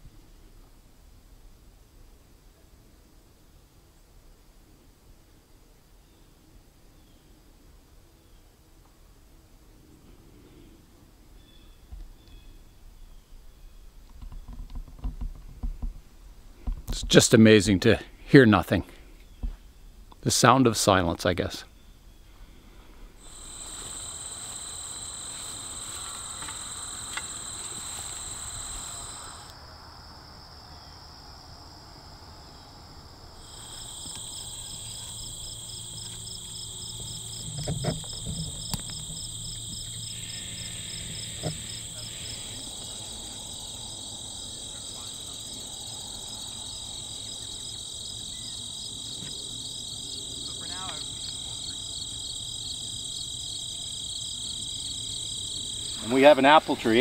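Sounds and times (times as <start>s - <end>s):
insects trilling: 23.2s - 57.0s
rapidly pulsing insect trill: 23.2s - 57.0s.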